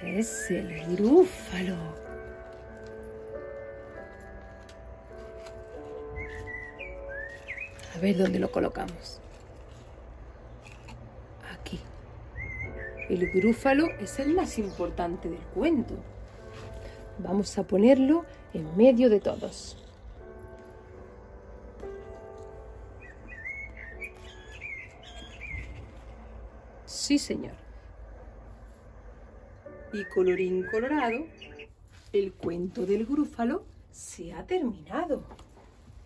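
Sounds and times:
faint background music: 0.0 - 36.0
low steady background rumble: 0.0 - 36.0
small bird twittering: 6.2 - 8.0, 23.0 - 26.0, 30.0 - 31.7.

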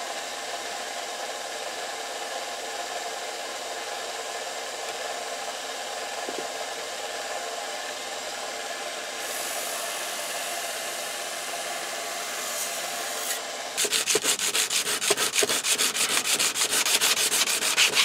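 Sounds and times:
belt sander running: 4.6 - 18.0
knife blade grinding hiss: 12.5 - 18.0.

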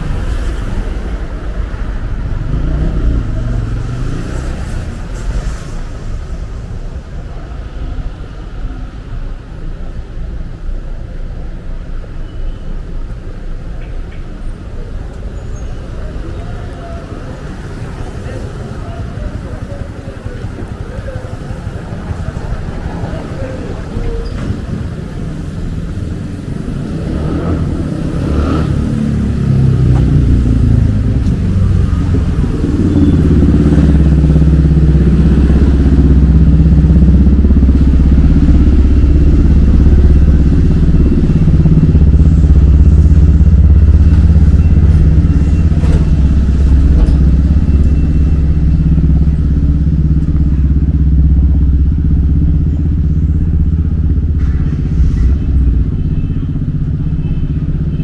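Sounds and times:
vehicle engine running: 14.4 - 58.0.

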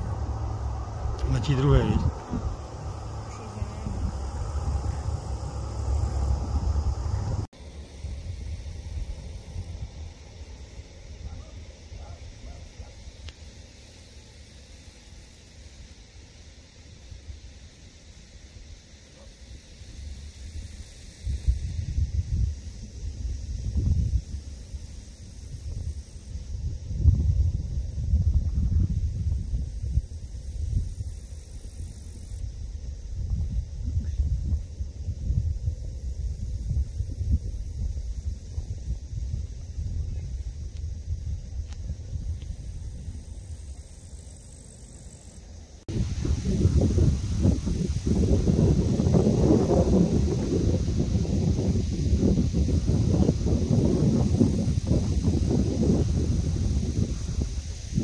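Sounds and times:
distant turboprop aircraft drone: 0.0 - 11.4
wind rumble on microphone: 0.0 - 13.4, 19.2 - 58.0.

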